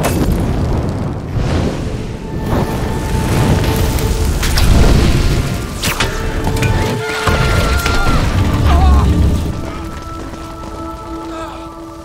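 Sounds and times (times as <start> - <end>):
music: 2.2 - 12.0.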